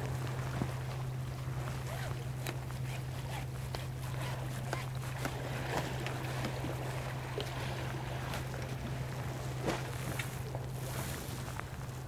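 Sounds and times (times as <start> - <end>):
distant engine drone: 0.0 - 11.9
small waves lapping on concrete: 0.0 - 12.0.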